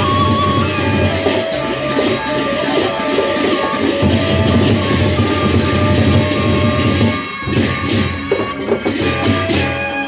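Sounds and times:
hand cymbals clashing: 0:00.0 - 0:10.0
large drums: 0:00.0 - 0:10.0.

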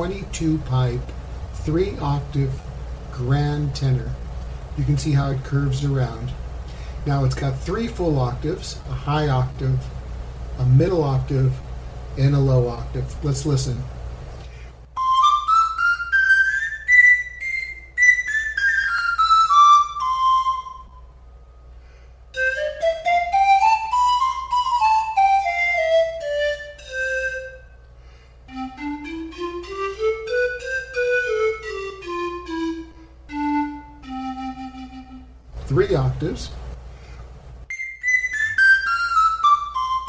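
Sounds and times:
pan flute playing scales: 0:14.9 - 0:21.5, 0:22.3 - 0:27.9, 0:28.5 - 0:35.5, 0:37.7 - 0:40.0.

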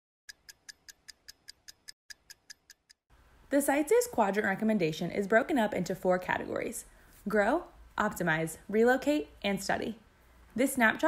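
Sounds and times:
clock ticking: 0:00.3 - 0:03.0.

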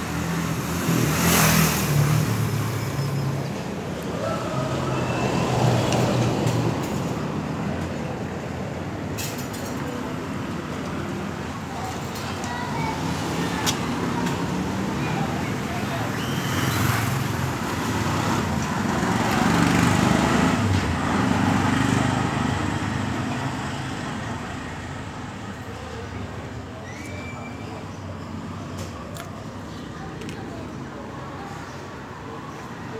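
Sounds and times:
traffic rumble: 0:00.0 - 0:32.9.

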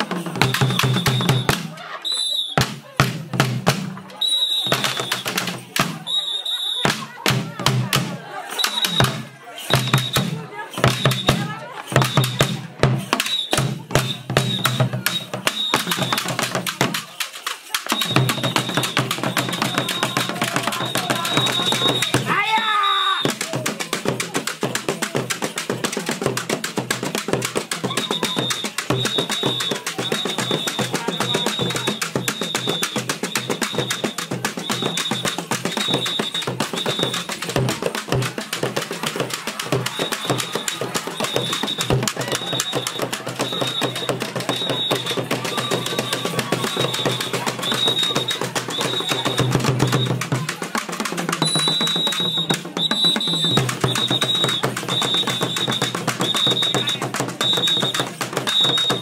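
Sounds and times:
fast steady drumming: 0:00.0 - 0:02.0, 0:02.6 - 0:06.2, 0:06.8 - 0:59.0.

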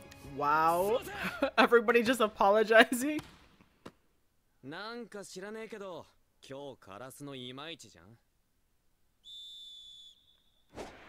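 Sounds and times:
referee's whistle: 0:09.2 - 0:10.7.

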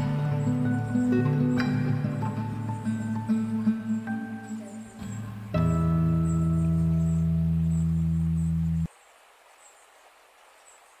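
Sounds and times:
acoustic guitar chord ringing: 0:00.0 - 0:08.9
faint background hiss: 0:00.0 - 0:11.0.

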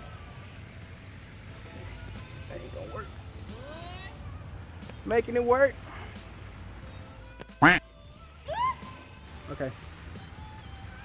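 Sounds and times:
faint background music: 0:00.0 - 0:11.0
short loud vocal call: 0:07.6 - 0:07.8.

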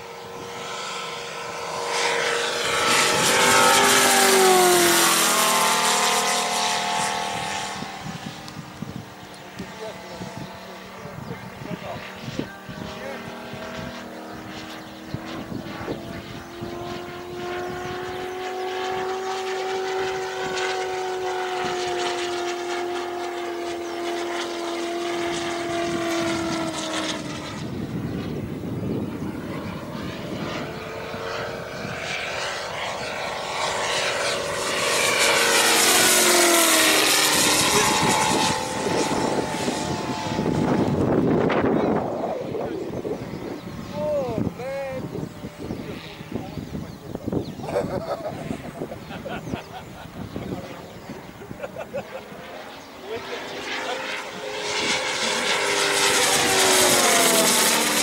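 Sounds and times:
model plane radial engine: 0:00.0 - 0:58.0.

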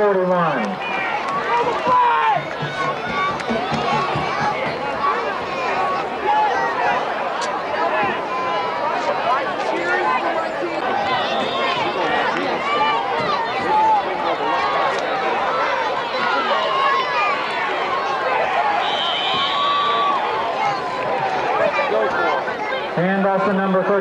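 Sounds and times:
crowd cheering and shouting: 0:00.0 - 0:24.0
referee's whistle: 0:18.8 - 0:20.1.

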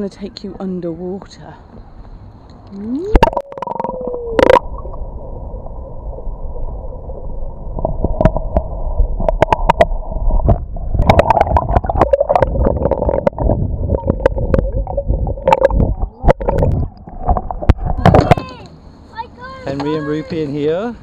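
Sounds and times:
muffled underwater rumble and gurgle: 0:02.7 - 0:18.6
bubbles popping and splashing: 0:02.8 - 0:05.0, 0:09.2 - 0:18.1.

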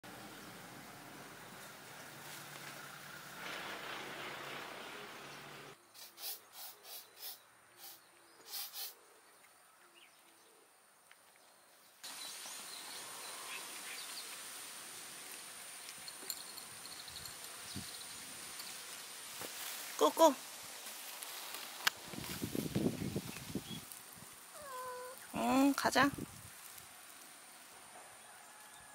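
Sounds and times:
high-pitched insect call: 0:05.9 - 0:09.0, 0:12.0 - 0:27.8.

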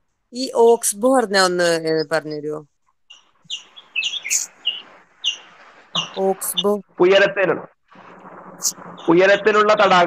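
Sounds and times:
high bird-like chirps: 0:03.1 - 0:06.8
steady hiss: 0:03.5 - 0:06.2.

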